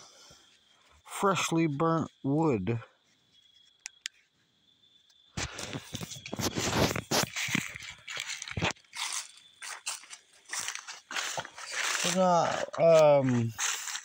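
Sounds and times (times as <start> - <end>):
footsteps crunching through dry leaves: 5.4 - 14.0.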